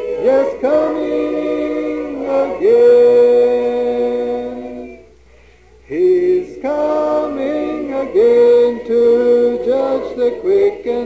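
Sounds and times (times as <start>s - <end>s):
choir singing a hymn: 0.0s - 5.2s, 5.9s - 11.0s.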